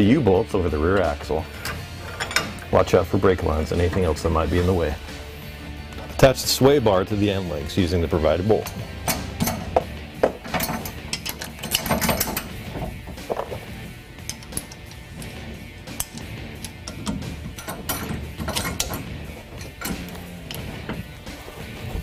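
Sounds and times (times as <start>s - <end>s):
metal parts tapping: 1.6s - 2.7s, 8.4s - 22.0s
hand ratchet clicking: 8.4s - 21.4s.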